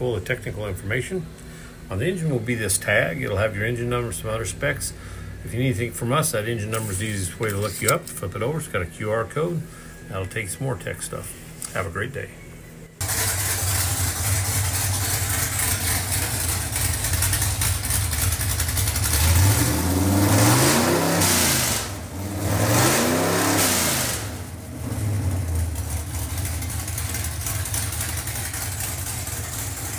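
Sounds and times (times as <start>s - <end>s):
engine idling and revving: 13.0s - 29.9s.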